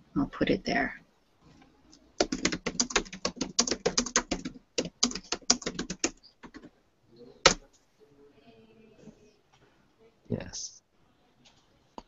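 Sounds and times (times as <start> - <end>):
typing on computer keyboard: 2.2 - 6.7.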